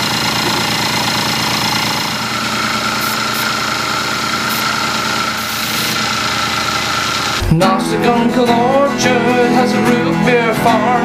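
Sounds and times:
airbrush compressor humming: 0:00.0 - 0:07.5.

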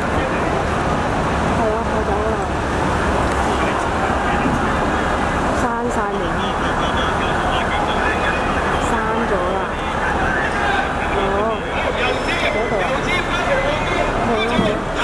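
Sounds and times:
people talking: 0:00.0 - 0:02.6, 0:03.3 - 0:15.0
road traffic noise: 0:00.0 - 0:15.0.

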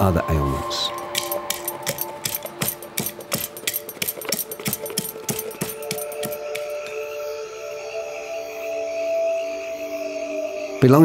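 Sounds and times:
ambient music with held tones: 0:00.0 - 0:11.0
pestle knocking in a mortar: 0:00.9 - 0:07.0.

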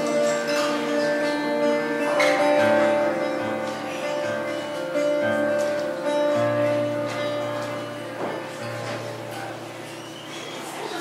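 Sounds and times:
acoustic guitar picking: 0:00.0 - 0:11.0.

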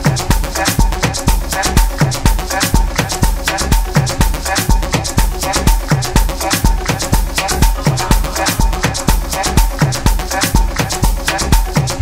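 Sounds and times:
kick drum beat: 0:00.0 - 0:12.0.

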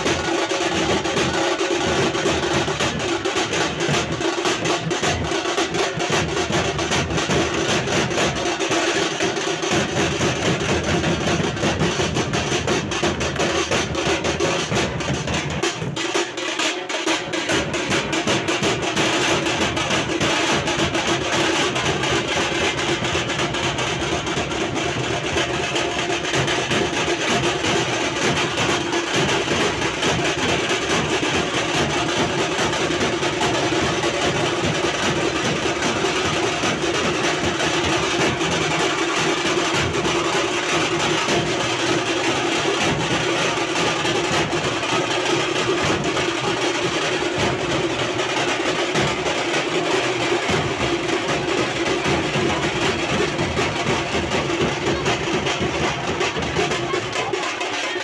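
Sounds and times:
fast barrel drumming: 0:00.0 - 0:58.0.

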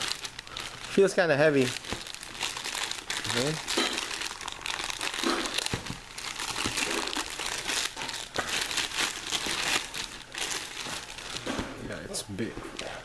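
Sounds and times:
plastic bag crinkling: 0:00.0 - 0:11.5.

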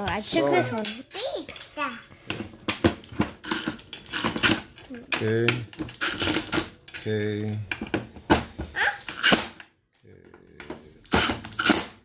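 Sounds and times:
child's voice: 0:00.2 - 0:02.1, 0:08.7 - 0:09.1
screws and metal plate knocking: 0:02.8 - 0:06.9.

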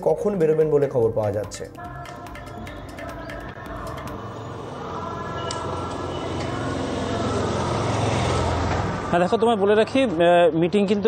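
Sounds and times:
street traffic noise: 0:00.0 - 0:11.0
vehicle engine hum: 0:02.8 - 0:10.1.

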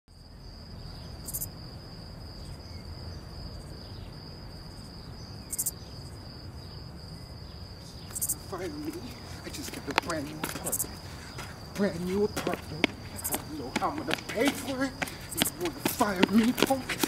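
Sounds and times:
crickets trilling: 0:00.1 - 0:17.0
low night-time rumble: 0:00.3 - 0:17.0.

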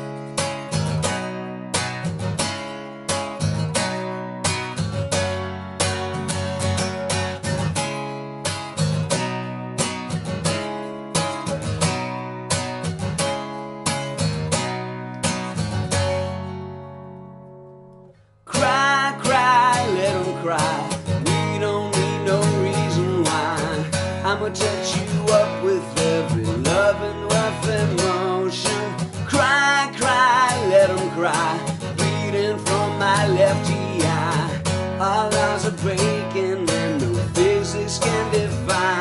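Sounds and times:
acoustic guitar strumming: 0:00.0 - 0:39.0
person singing: 0:18.5 - 0:39.0.

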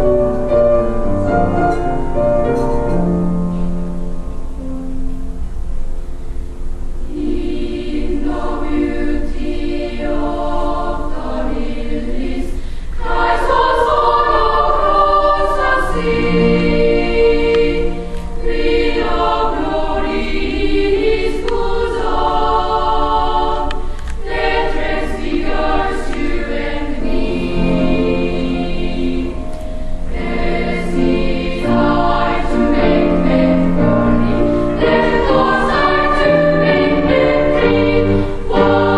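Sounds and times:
children's choir singing: 0:06.9 - 0:38.9.

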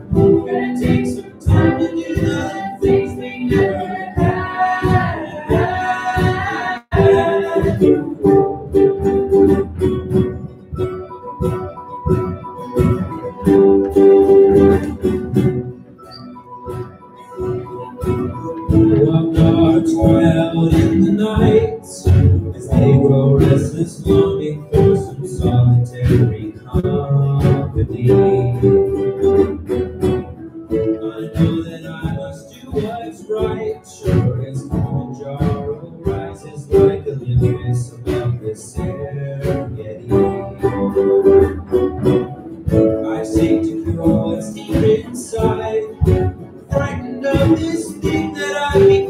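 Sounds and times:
percussive strokes beat: 0:00.0 - 0:15.9, 0:16.6 - 0:49.0
held chords: 0:00.0 - 0:49.0
school ensemble playing: 0:00.0 - 0:49.0
strummed plucked strings: 0:00.0 - 0:49.0.

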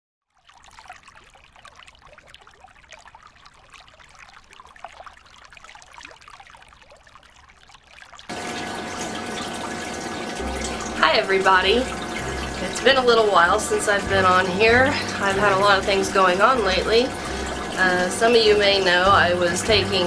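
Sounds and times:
water trickling: 0:00.2 - 0:20.0
steady rush of water: 0:07.4 - 0:20.0
faint hum: 0:08.3 - 0:20.0.

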